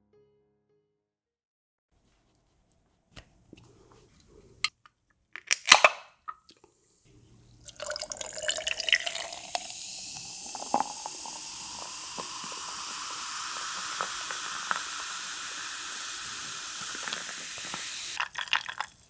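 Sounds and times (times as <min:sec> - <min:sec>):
soda pouring over ice: 0:07.6 - 0:19.0
fizzing hiss: 0:07.7 - 0:18.9.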